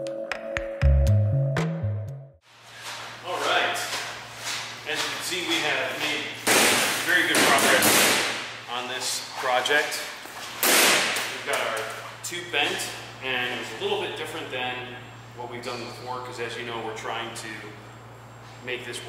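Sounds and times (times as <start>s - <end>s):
steady low hum: 2.5s - 19.0s
man speaking: 3.2s - 4.0s, 4.9s - 6.4s.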